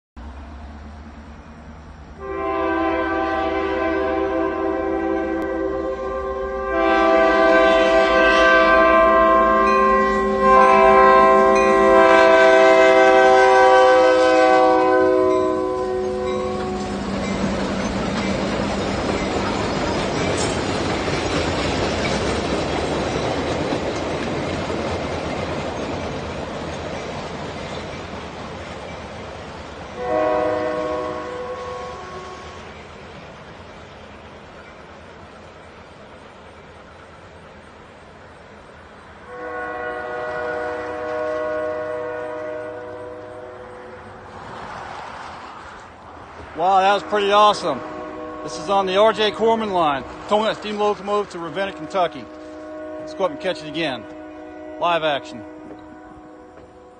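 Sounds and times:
locomotive air horn blasts: 2.2 - 17.1, 30.0 - 32.7, 39.2 - 44.1, 46.7 - 56.9
train wheels on rails: 3.3 - 56.9.

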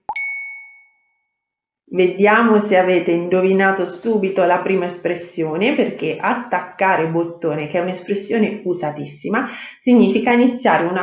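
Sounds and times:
bell ding: 0.0 - 1.3.

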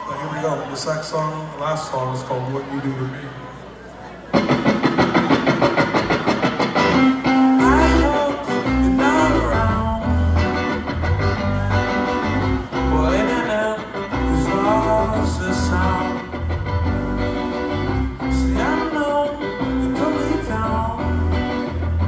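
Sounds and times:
drums: 4.2 - 22.0
bass guitar: 4.3 - 22.0
electric guitar lines: 4.3 - 22.0.

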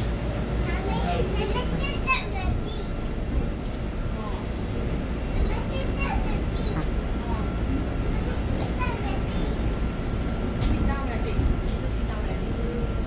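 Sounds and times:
bus road rumble: 0.0 - 13.0
passengers talking: 0.0 - 13.0.

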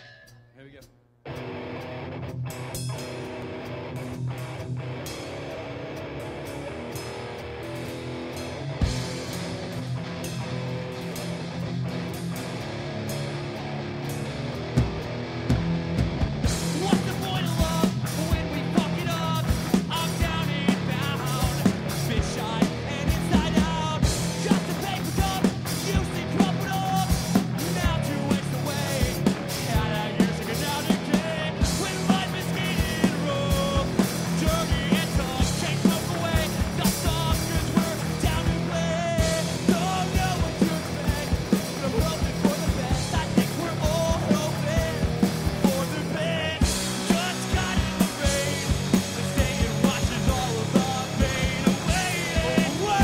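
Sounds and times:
person speaking: 0.5 - 0.9
punk rock band playing: 1.2 - 53.0.

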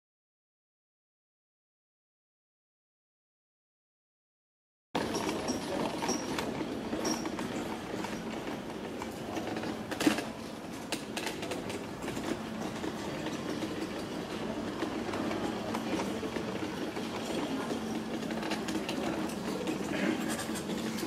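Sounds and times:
wheelchair rattling over cobblestones: 5.0 - 21.0.

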